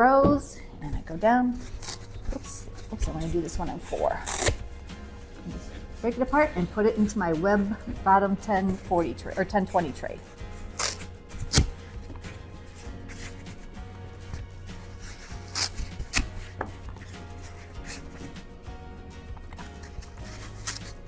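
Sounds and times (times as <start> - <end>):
soft background music: 0.0 - 21.0
foam sheet snapping: 10.8 - 11.8, 20.4 - 21.0.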